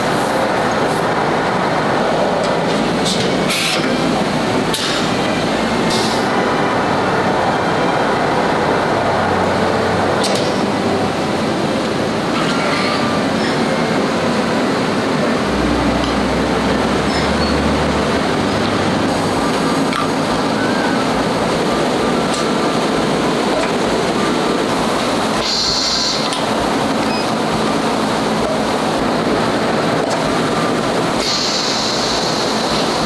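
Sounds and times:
steam presses and machines running: 0.0s - 33.0s.

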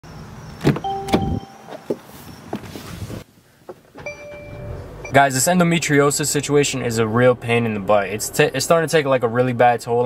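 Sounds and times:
car door clunks: 0.6s - 2.7s
short steady tone: 0.8s - 1.7s, 4.0s - 5.2s.

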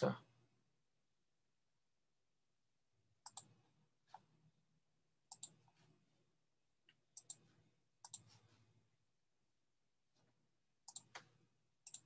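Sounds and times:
computer mouse clicks: 3.2s - 4.3s, 5.3s - 5.8s, 6.9s - 8.4s, 10.8s - 12.0s.

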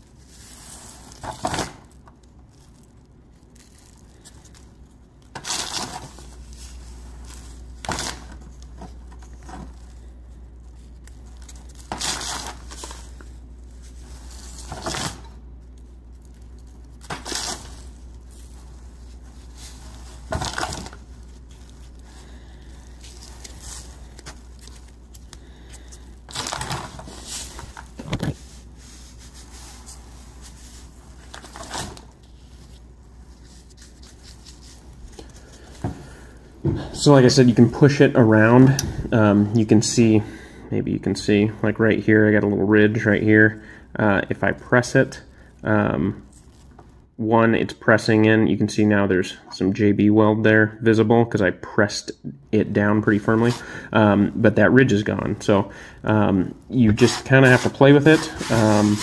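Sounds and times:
plastic bag crinkling: 0.0s - 38.8s, 45.1s - 47.1s, 54.9s - 59.0s
grit crunching: 54.8s - 59.0s.

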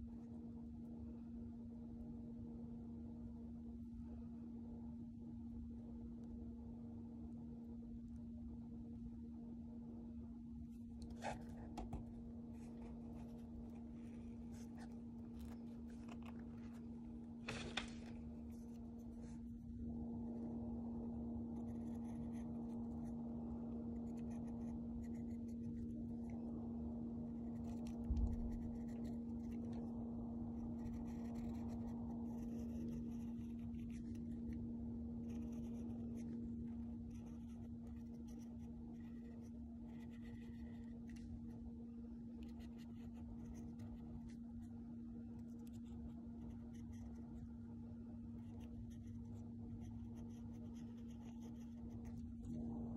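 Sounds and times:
low electrical hum: 0.0s - 52.9s
pen scratching on paper: 11.1s - 13.8s, 21.5s - 23.2s, 23.9s - 25.9s, 27.4s - 29.9s, 30.6s - 34.6s, 35.2s - 41.2s, 42.4s - 44.4s, 45.4s - 47.4s, 48.4s - 52.8s.

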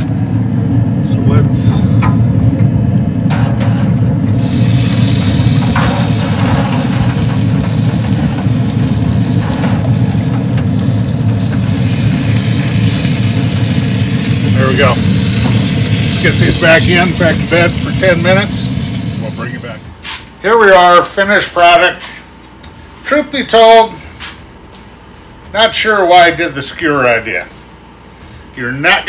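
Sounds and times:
smoker low rumble: 0.0s - 29.0s
hiss: 4.3s - 10.2s.

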